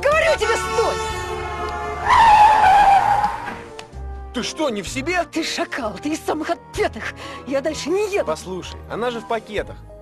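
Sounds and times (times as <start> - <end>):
background music: 0.0 - 10.0
vehicle tyres squealing: 1.7 - 3.7.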